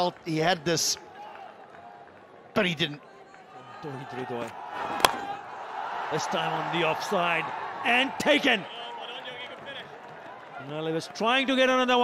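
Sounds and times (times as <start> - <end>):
cricket bat striking ball: 4.8 - 5.4.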